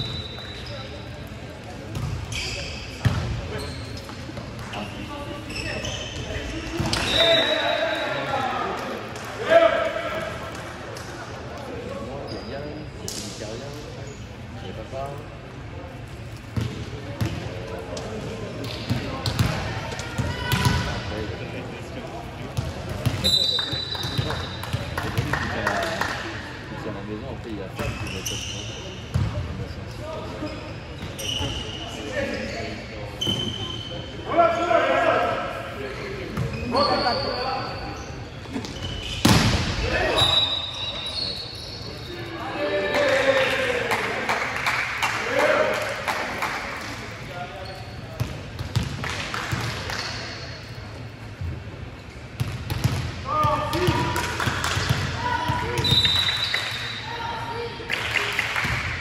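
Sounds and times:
shoe squeaks: 0.0 - 1.0, 2.2 - 8.2, 12.2 - 13.0, 23.2 - 24.6, 27.8 - 29.1, 29.8 - 34.1, 36.4 - 39.3, 40.2 - 42.4, 47.6 - 48.2.

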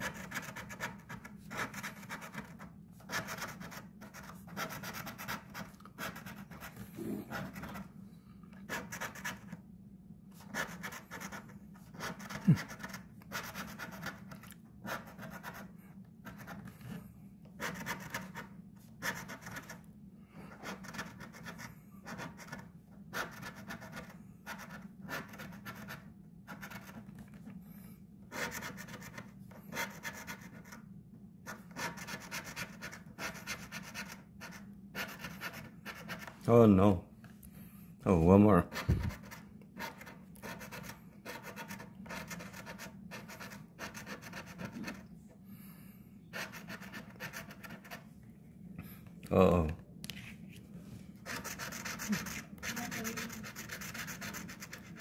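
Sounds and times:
coin scratching lottery ticket: 0.0 - 7.9, 8.6 - 9.6, 10.4 - 16.7, 17.6 - 19.8, 20.6 - 27.2, 28.3 - 30.8, 31.5 - 36.5, 38.6 - 45.0, 46.3 - 48.0, 51.2 - 55.0
low steady hum: 0.0 - 32.2, 32.8 - 55.0.

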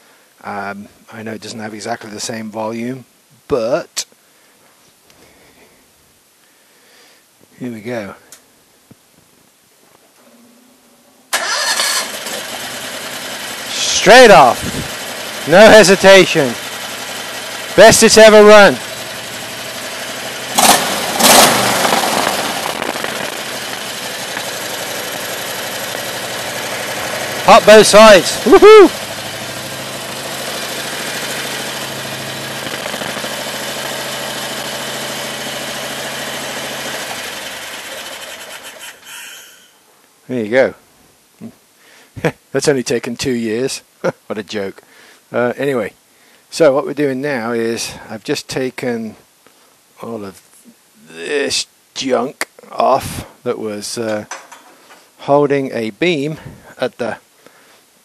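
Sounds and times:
engine starting and idling: 11.3 - 39.2.

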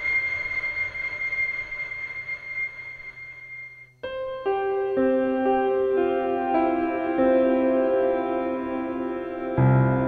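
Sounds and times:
high ringing tone: 0.0 - 4.1.

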